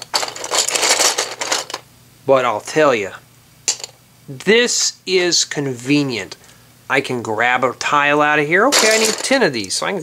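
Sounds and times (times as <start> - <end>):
plastic bricks clattering in a tub: 0.0 - 1.8, 8.7 - 9.4.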